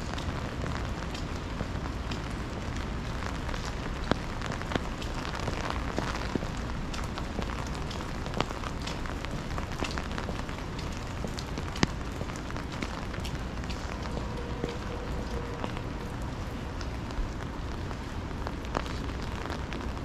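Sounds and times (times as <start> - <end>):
low continuous rumble: 0.0 - 20.0
steady rain: 0.0 - 20.0.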